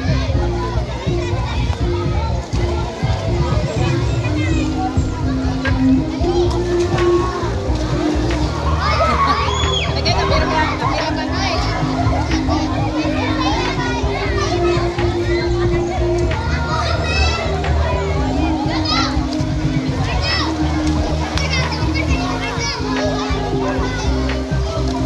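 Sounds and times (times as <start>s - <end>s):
children shouting and chattering: 0.0s - 25.0s
music of long held notes: 0.0s - 25.0s.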